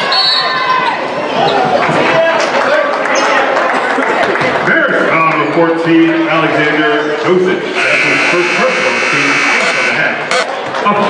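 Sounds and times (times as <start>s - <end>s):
arena game horn blast: 7.7s - 10.5s.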